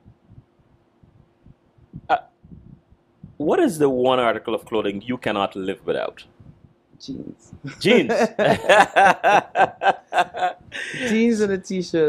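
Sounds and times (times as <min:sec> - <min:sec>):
faint steady hum: 0:00.0 - 0:12.0
person saying uh: 0:07.5 - 0:11.3.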